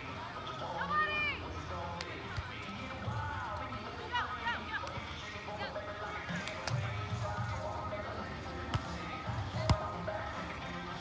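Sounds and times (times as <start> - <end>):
volleyball slaps: 6.4 - 6.9, 8.7 - 10.0.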